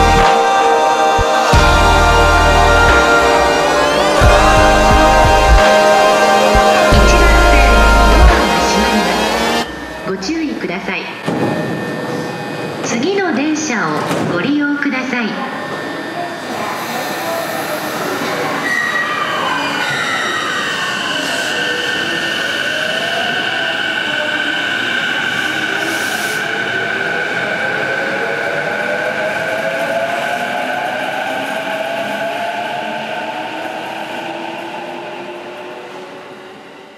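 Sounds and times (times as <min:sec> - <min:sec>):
subway train electric motors whining: 0:00.0 - 0:36.9
high squeal: 0:01.4 - 0:08.1, 0:15.4 - 0:27.6.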